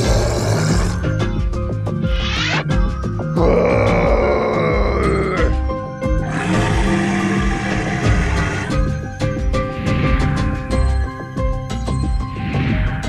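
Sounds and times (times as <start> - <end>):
monster roars: 0.0 - 1.1, 3.4 - 9.0
background music: 0.0 - 13.0.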